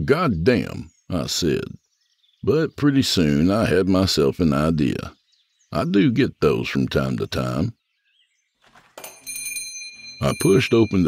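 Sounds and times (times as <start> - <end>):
shop door bell ringing: 9.0 - 11.0.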